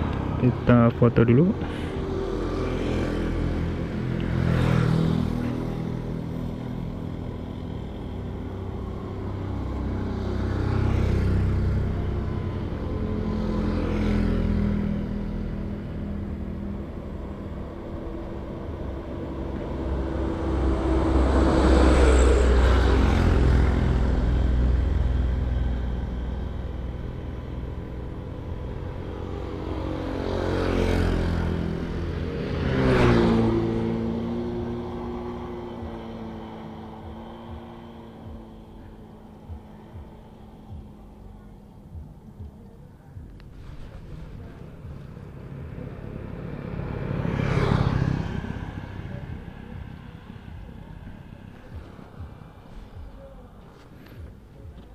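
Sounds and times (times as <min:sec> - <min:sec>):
motor vehicles passing by: 0:00.0 - 0:54.9.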